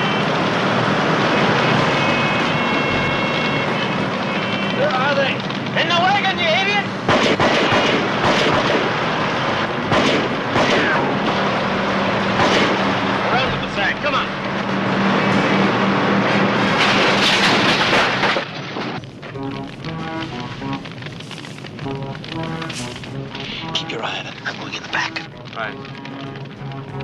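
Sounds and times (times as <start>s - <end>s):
tractor engine drone: 0.0s - 27.0s
dramatic score music: 5.4s - 27.0s
gunshots and booms: 6.4s - 15.6s, 16.6s - 23.8s.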